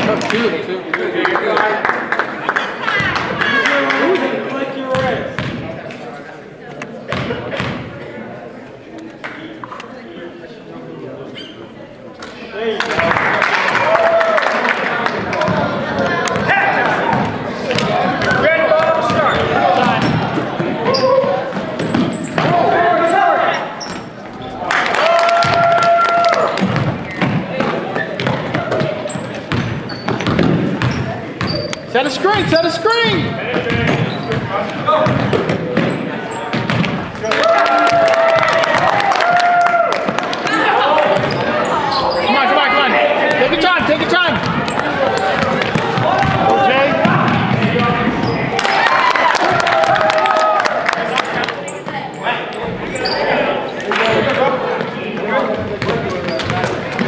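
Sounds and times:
sneakers squeaking: 11.2s - 12.4s, 15.4s - 24.6s, 26.3s - 37.4s, 40.0s - 49.0s, 51.0s - 57.0s
basketball bouncing on wooden floor: 26.6s - 31.7s, 33.5s - 37.1s, 41.2s - 41.5s, 44.3s - 48.3s
background voices echoing: 40.0s - 49.8s.

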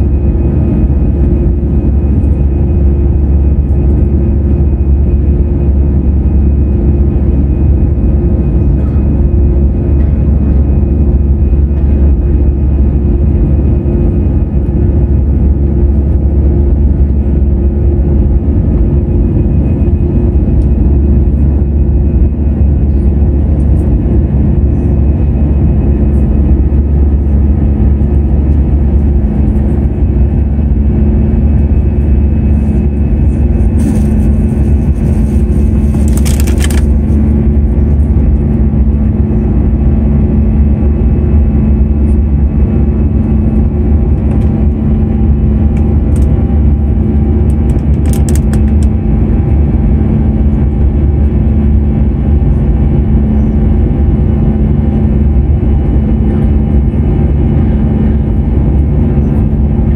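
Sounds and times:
airplane engine drone: 0.0s - 59.9s.

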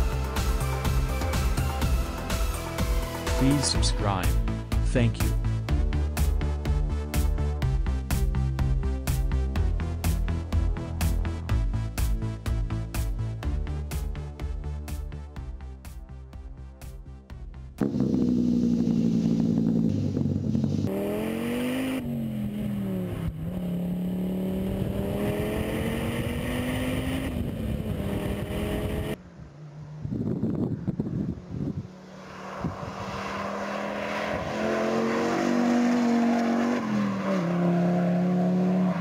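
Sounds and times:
car engine pulling hard: 17.8s - 39.0s.

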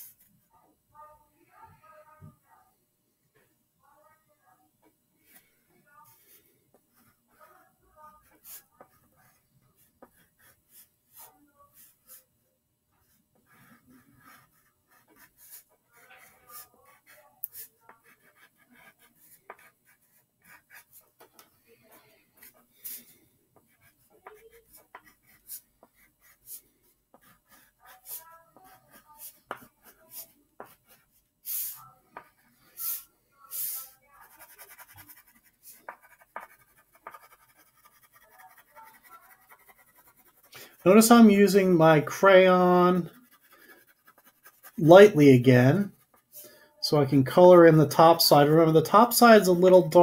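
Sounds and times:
crayon scratching on paper: 6.0s - 12.3s, 13.0s - 44.9s, 45.6s - 46.4s.

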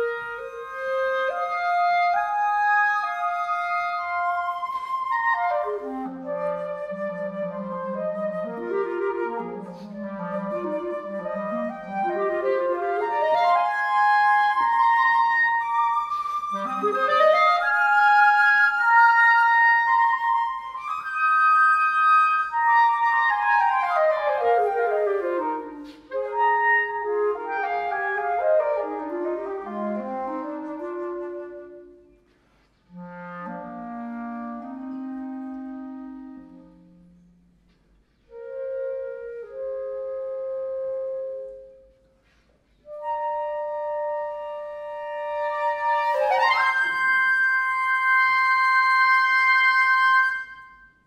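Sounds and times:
flute and clarinet duet: 0.0s - 51.0s.

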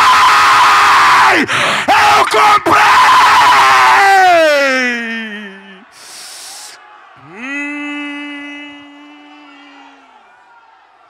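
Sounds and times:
preacher crying through microphone: 0.0s - 10.1s
congregation shouting: 0.0s - 11.0s.

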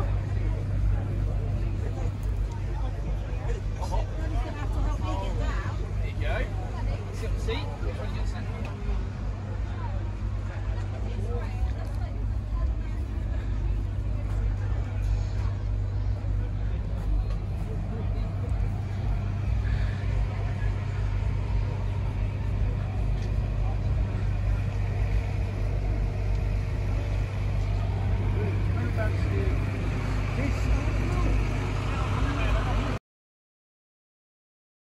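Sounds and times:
low engine drone: 0.0s - 33.0s
people chattering: 0.0s - 33.0s.

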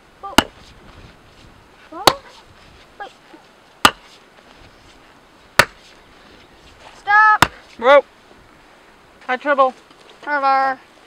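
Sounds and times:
sledgehammer striking wooden post: 0.3s - 0.7s, 2.0s - 2.4s, 3.8s - 4.2s, 5.6s - 5.9s, 7.4s - 7.6s.

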